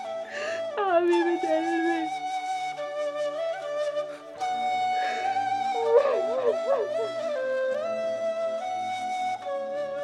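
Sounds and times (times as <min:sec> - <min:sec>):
held woodwind note: 0:03.6 - 0:09.2
sad drama score: 0:04.2 - 0:09.2
woman crying: 0:05.1 - 0:07.3.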